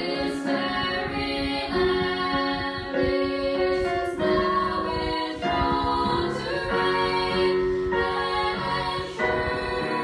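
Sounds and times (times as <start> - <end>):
women singing in harmony: 0.0 - 10.0.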